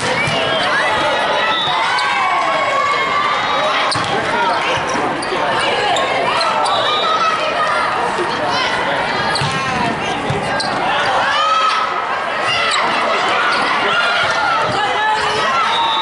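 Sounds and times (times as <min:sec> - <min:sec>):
crowd voices: 0:00.0 - 0:16.0
players calling: 0:00.0 - 0:16.0
shoes squeaking on court: 0:09.3 - 0:11.2.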